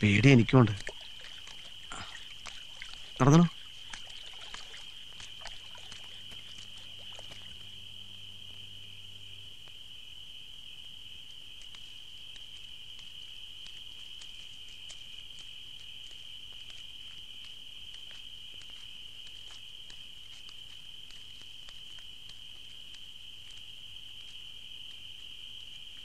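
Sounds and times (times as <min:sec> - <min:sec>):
insects chirring: 0:00.0 - 0:26.0
faint ticks: 0:00.3 - 0:26.0
low hum: 0:05.8 - 0:09.7.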